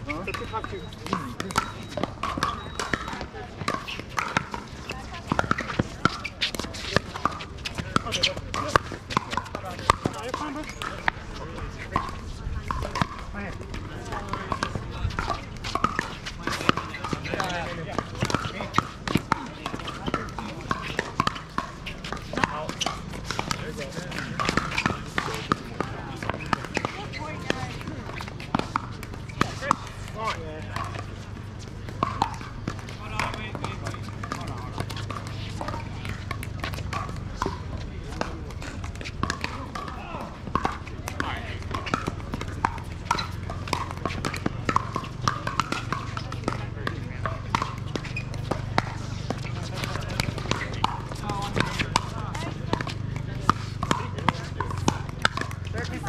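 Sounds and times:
paddles striking balls: 0.0 - 56.0
players chattering: 0.0 - 56.0.

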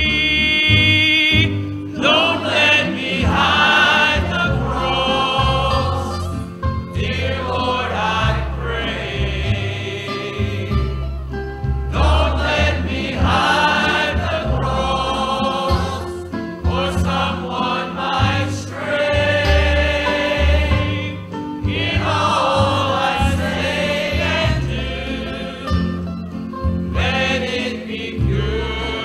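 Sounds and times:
choir singing gospel: 0.0 - 11.2, 11.9 - 29.0
instrumental accompaniment with bass: 0.0 - 29.0.

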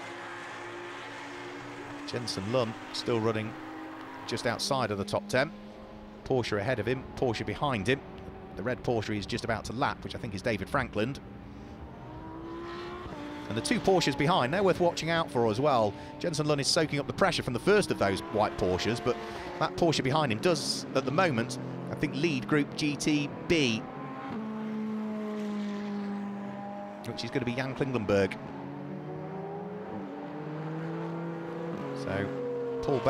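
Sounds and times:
racing car engine at speed: 0.0 - 33.0.

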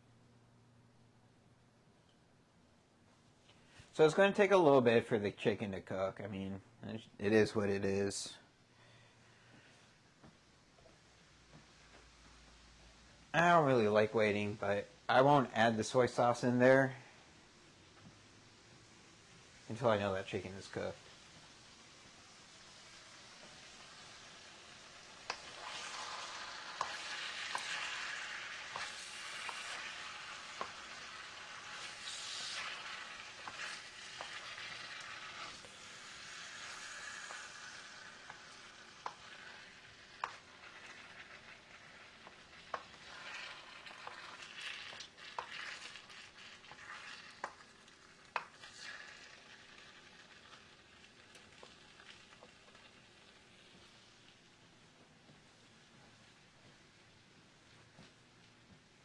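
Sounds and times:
food sizzling in a wok: 16.9 - 54.3
wooden spoon scraping pan: 25.3 - 38.4, 40.2 - 47.6.

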